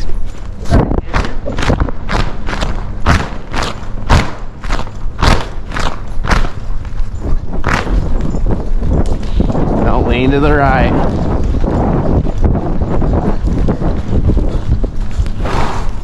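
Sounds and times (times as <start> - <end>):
horse hooves thudding on sand: 0.0 - 16.0
low rumble: 0.0 - 16.0.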